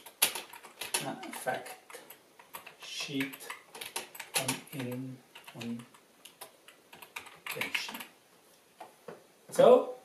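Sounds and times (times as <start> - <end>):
typing on computer keyboard: 0.0 - 8.1.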